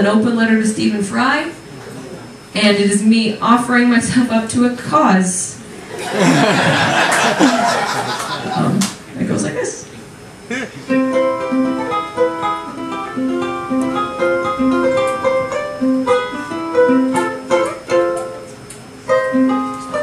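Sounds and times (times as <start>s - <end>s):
ukulele playing: 10.9s - 20.0s.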